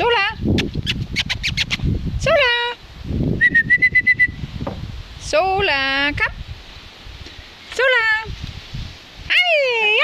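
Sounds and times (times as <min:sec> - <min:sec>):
short whistled notes: 0:03.4 - 0:04.4.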